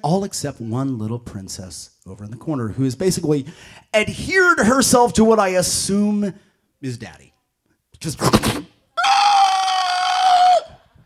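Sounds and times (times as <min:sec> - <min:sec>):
man squealing in falsetto: 0:09.0 - 0:11.0.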